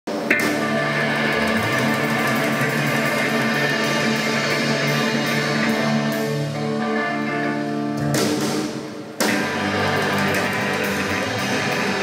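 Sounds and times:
rock band playing: 0.1 - 12.0.

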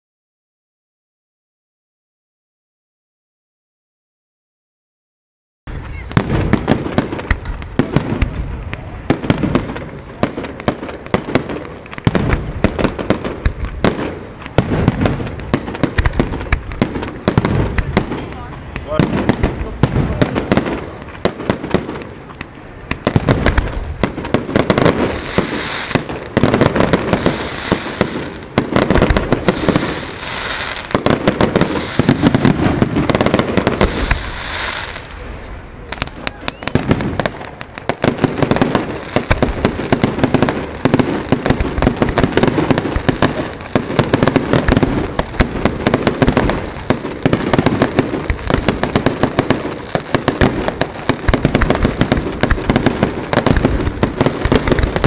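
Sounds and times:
fireworks bursting: 5.7 - 55.0.

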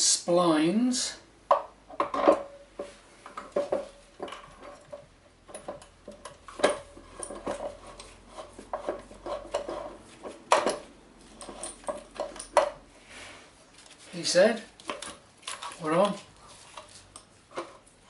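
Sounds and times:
metal clinks and knocks: 1.5 - 12.8.

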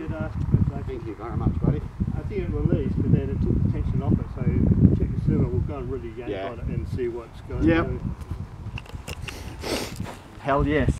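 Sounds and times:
wind rumbling on microphone: 0.0 - 10.9.

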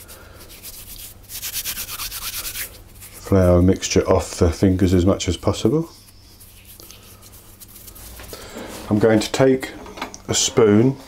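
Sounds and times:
floury hands rubbing together: 0.0 - 4.3, 5.3 - 9.0.

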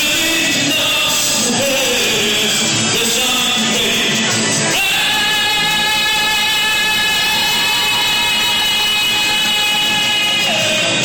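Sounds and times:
backing music: 0.0 - 11.0
man singing a long note: 0.0 - 11.0.

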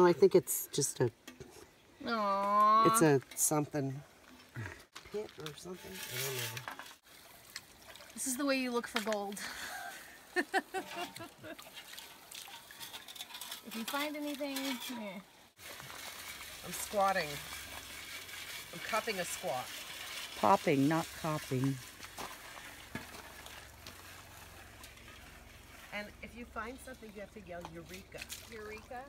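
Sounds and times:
water trickling in creek: 0.0 - 29.0
water in plastic pan: 4.2 - 29.0.

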